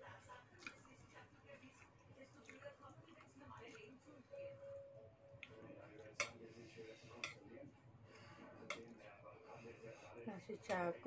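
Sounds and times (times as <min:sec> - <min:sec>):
faint background speech: 0:00.0 - 0:11.0.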